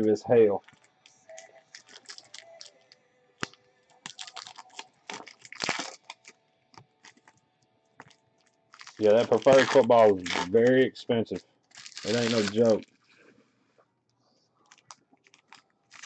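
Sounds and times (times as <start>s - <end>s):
trading cards crinkling: 0.6s - 7.4s, 8.0s - 13.2s, 14.6s - 16.0s.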